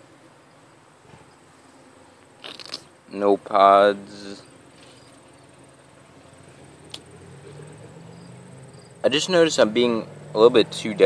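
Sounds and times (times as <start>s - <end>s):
insects chirping: 0.3s - 11.0s.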